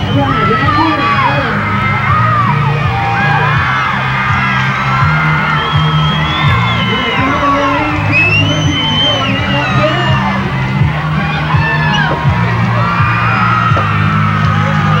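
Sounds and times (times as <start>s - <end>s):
crowd shouting and whooping: 0.0s - 15.0s
music with repeating bass line: 0.0s - 15.0s.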